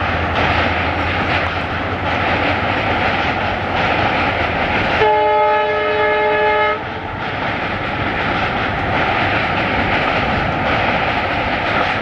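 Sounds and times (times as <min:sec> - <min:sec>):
train running rumble: 0:00.0 - 0:12.0
locomotive horn blast: 0:05.0 - 0:06.8.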